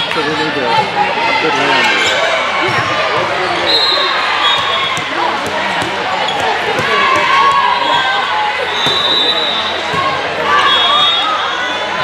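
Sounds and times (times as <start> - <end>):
murmur of voices: 0.0 - 12.0
volleyballs bouncing on hard floor: 4.6 - 7.7.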